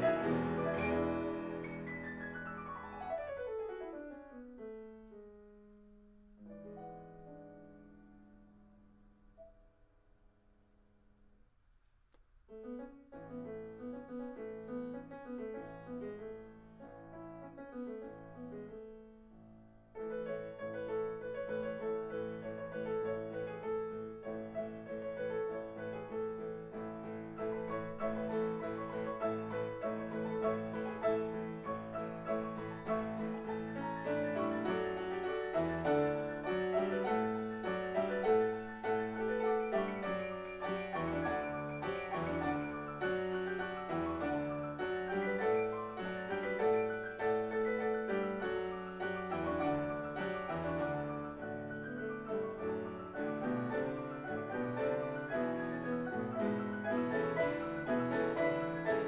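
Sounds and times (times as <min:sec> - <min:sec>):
piano played four hands: 0:00.0 - 0:09.9, 0:12.5 - 0:59.0.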